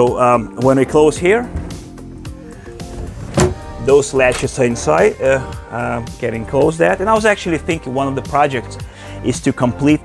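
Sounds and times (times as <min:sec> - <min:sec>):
background music: 0:00.0 - 0:10.0
glass panel sliding shut: 0:02.6 - 0:05.0.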